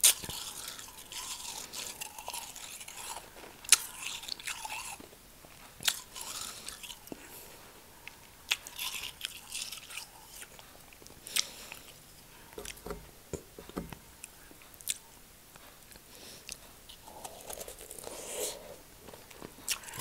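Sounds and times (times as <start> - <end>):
soft crackly chewing: 0.0 - 20.0.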